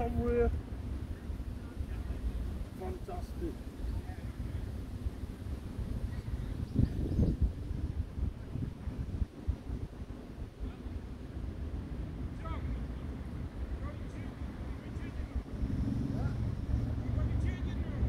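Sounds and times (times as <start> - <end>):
faint distant voices: 0.0 - 18.0
wind buffeting microphone: 0.0 - 18.0.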